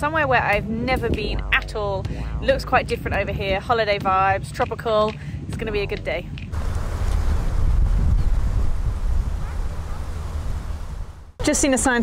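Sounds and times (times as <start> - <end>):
wind noise on microphone: 0.4 - 11.4.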